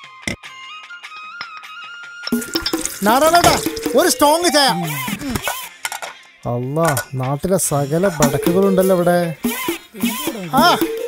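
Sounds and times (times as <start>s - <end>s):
background music tone: 2.3s - 11.0s
man speaking loudly: 3.0s - 5.4s, 6.5s - 9.4s, 10.0s - 11.0s.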